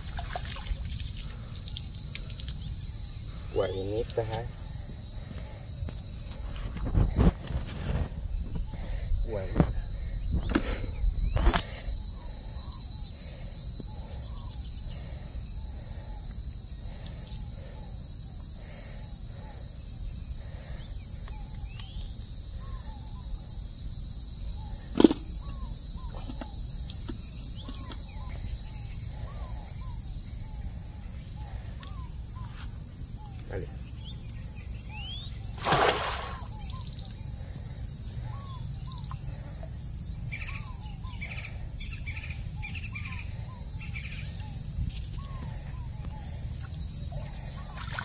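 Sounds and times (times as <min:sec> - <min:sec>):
net splashing into water: 0:00.0 - 0:01.3, 0:35.6 - 0:36.5
insect buzz: 0:00.0 - 0:48.0
birds chirping: 0:08.3 - 0:23.5, 0:24.2 - 0:48.0.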